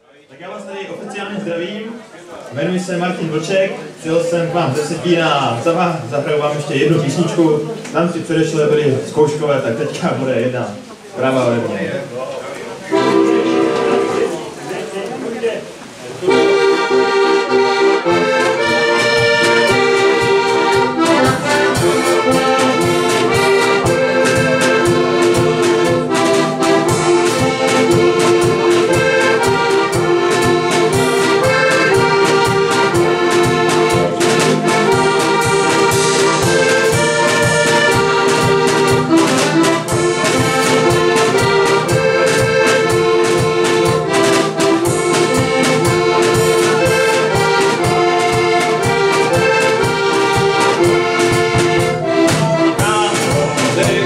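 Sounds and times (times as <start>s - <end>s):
button accordion playing folk tune: 12.9s - 14.6s, 16.2s - 54.0s.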